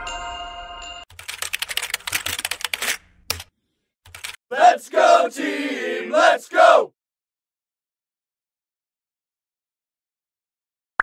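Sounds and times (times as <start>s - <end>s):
chiming music jingle: 0.0s - 1.1s
computer keyboard typing: 1.1s - 3.5s, 4.1s - 4.4s.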